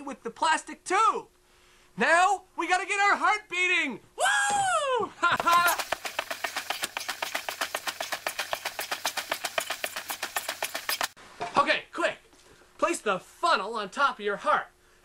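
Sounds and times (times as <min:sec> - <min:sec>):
man exclaiming: 0:03.7 - 0:05.8
fast sharp taps: 0:05.4 - 0:11.2.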